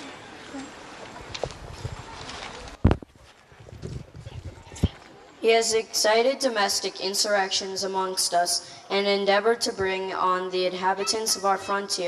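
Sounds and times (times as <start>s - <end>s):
microphone handling knocks and rubs: 2.8s - 5.0s.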